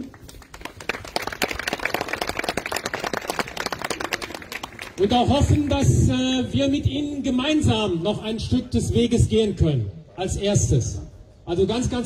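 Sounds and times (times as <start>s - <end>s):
crowd applauding: 0.0s - 5.8s.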